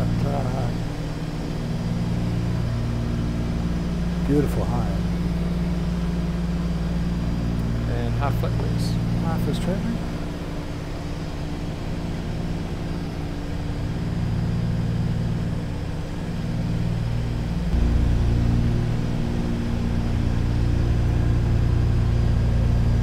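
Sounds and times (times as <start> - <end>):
propeller aircraft engines droning: 0.0 - 23.0.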